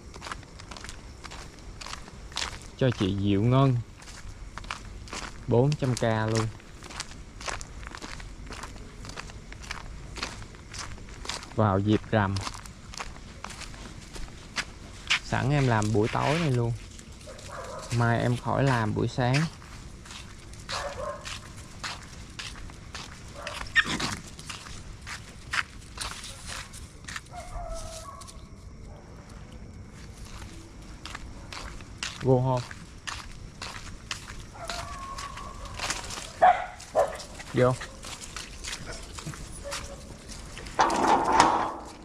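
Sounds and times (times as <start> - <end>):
footsteps on pavement: 0.0 - 28.8, 29.8 - 42.0
dog barking: 17.2 - 18.0, 20.7 - 21.4, 23.3 - 23.9, 27.3 - 29.2, 34.5 - 38.1, 38.8 - 40.2.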